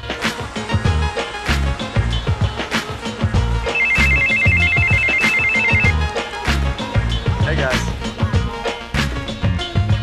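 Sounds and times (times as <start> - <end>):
mobile phone ringtone trilling: 3.7 - 6.0.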